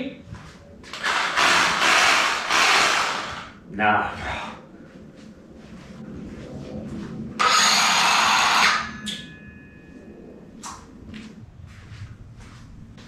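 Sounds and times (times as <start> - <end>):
cordless power tool revving: 1.0 - 3.6.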